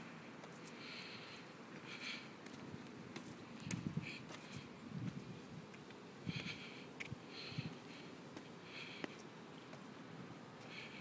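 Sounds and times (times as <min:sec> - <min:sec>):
short breath close to microphone: 0:00.8 - 0:02.4, 0:06.2 - 0:09.2
soft footstep thumps: 0:01.8 - 0:06.0.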